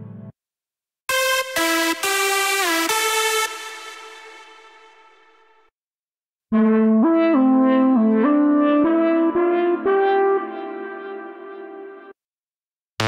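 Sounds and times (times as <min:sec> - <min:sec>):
synth lead melody: 0:01.1 - 0:05.5, 0:06.5 - 0:12.1.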